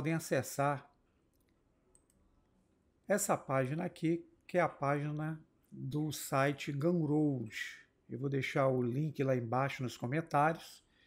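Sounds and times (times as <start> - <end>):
faint clicks: 1.3 - 2.2.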